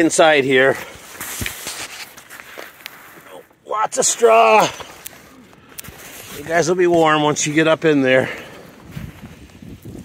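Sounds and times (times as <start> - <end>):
rustling in snow and straw: 5.1 - 10.0.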